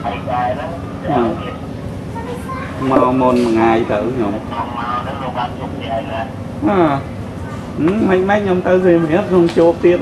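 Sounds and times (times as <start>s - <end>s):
low background rumble: 0.0s - 10.0s
voices talking: 0.0s - 10.0s.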